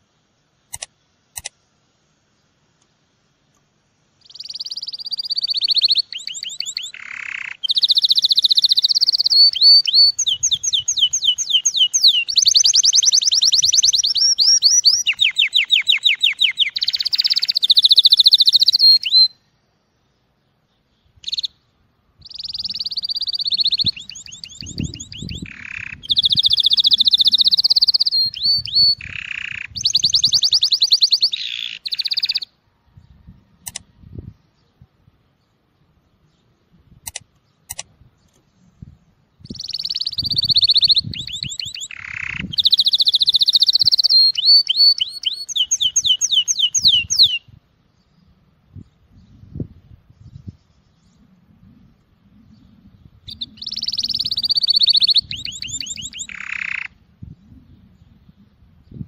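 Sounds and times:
canary singing trills: 0:04.2 - 0:19.5, 0:20.6 - 0:34.8, 0:39.4 - 0:51.3, 0:52.4 - 0:59.0.

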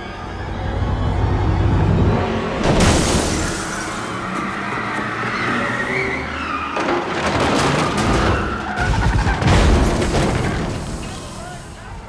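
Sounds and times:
car tires squealing: 0:03.4 - 0:09.5.

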